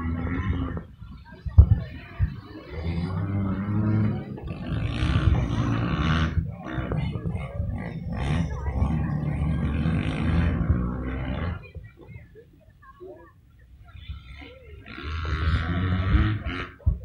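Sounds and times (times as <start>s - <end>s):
dirt bike engines revving: 0.0s - 17.0s.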